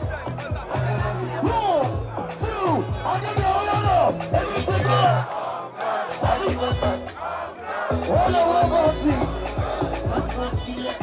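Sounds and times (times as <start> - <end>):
crowd shouting and singing along: 0.0 - 11.0
live concert music: 0.0 - 11.0.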